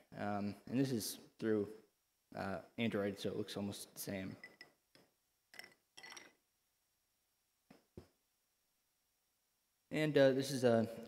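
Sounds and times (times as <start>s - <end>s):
glass clinks: 4.3s - 4.8s, 5.5s - 6.4s.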